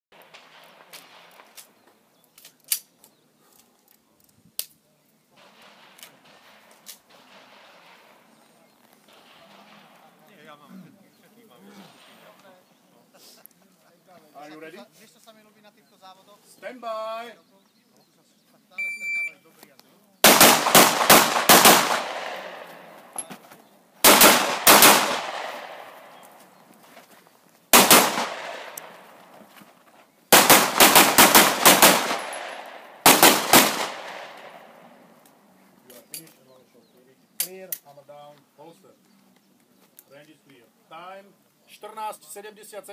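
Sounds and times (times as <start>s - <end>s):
handgun shots echoing: 20.2s - 23.3s, 24.0s - 26.4s, 27.8s - 29.3s, 30.3s - 35.0s
sharp clicks: 27.8s - 29.1s.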